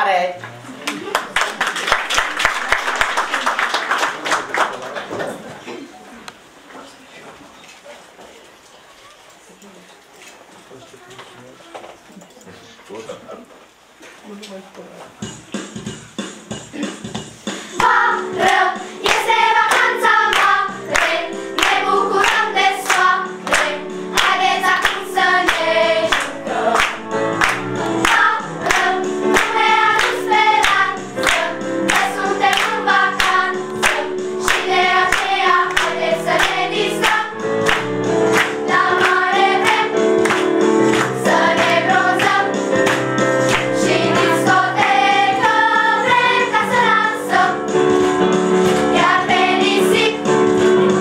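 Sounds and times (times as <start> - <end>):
hands clapping on the beat: 0.4 - 5.3, 17.7 - 45.6, 47.9 - 49.3
instrumental accompaniment: 15.1 - 51.0
girls singing a children's song: 17.8 - 47.9, 48.8 - 51.0.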